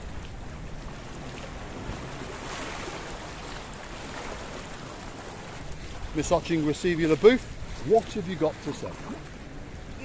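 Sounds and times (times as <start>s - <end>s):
waves splashing among rocks: 0.9s - 9.4s.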